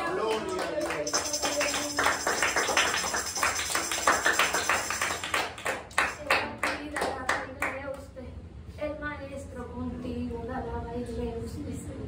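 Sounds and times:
voices: 0.0s - 3.0s
people clapping hands: 0.0s - 7.8s.

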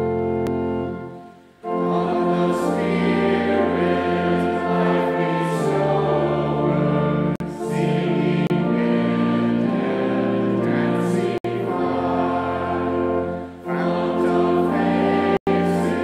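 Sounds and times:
church organ chord: 0.0s - 16.0s
choir singing: 0.4s - 16.0s.

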